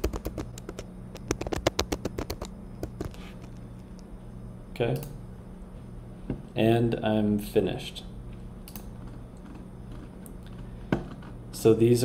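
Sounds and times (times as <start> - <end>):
keyboard typing: 0.0 - 3.6.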